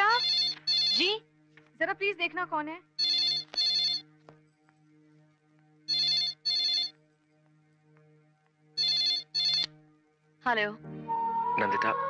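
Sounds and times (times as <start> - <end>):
telephone ringing: 0.0 - 1.2, 3.0 - 4.0, 5.9 - 6.9, 8.8 - 9.7.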